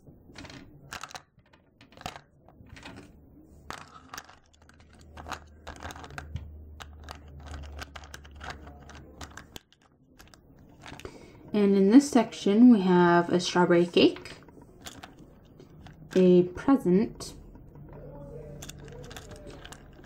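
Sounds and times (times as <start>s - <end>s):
clay charms rattling in plastic box: 0.4s - 3.1s, 3.7s - 11.1s, 14.2s - 16.3s, 18.5s - 20.0s.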